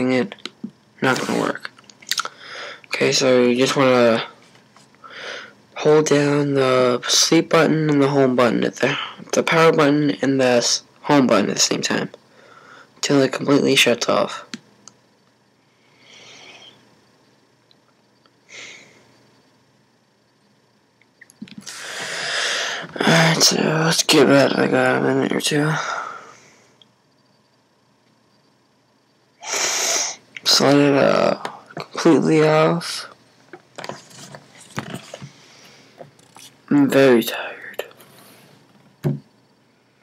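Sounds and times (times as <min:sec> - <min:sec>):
faint hiss: 0:15.5 - 0:17.4, 0:20.2 - 0:27.8, 0:29.2 - 0:33.2.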